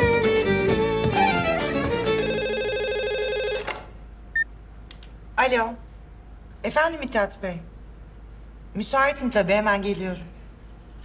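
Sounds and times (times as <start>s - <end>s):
phone ringtone: 2.2s - 3.7s.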